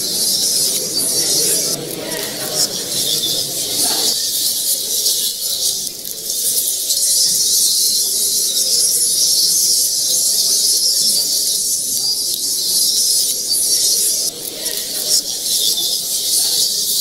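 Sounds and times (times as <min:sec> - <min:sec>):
high-pitched hiss: 0:00.0 - 0:17.0.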